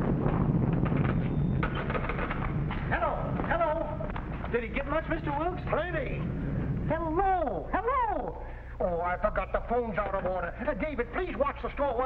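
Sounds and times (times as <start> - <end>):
thunder rumble: 0.0 - 7.7.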